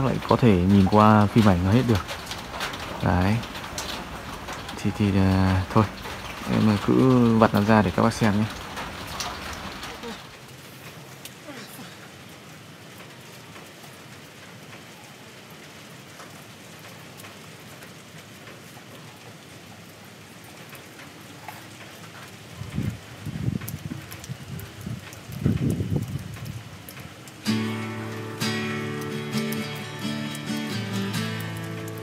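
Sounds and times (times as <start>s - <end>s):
faint drip ticks: 0.0s - 32.0s
steady rain falling: 0.0s - 32.0s
background guitar music: 27.4s - 32.0s.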